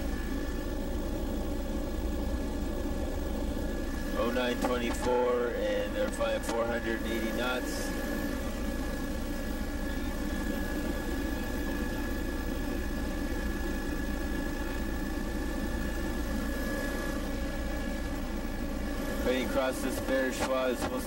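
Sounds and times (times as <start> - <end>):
aircraft engine drone: 0.0 - 21.0
thin high whine: 0.0 - 21.0.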